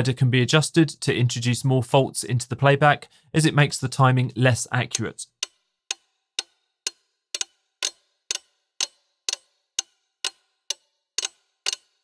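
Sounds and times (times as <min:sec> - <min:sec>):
pocket watch ticking: 0:05.3 - 0:12.0.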